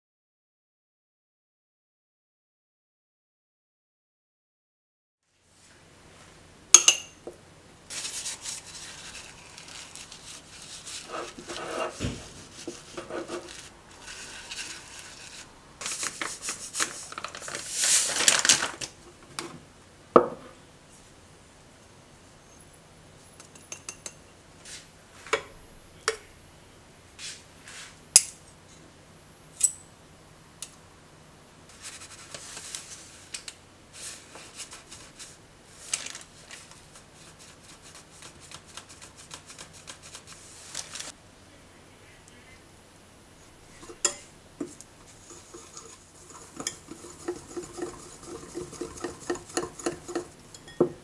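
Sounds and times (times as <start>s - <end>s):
paper towel scrubbing ceramic dish: 7.9s - 18.0s, 45.0s - 50.6s
folded paper crinkling: 7.9s - 19.0s, 34.1s - 41.2s.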